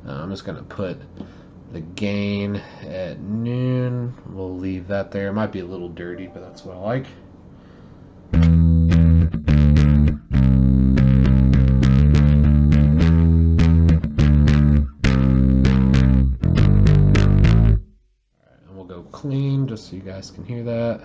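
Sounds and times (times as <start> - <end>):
slightly dirty bass guitar riff: 8.4 - 18.0.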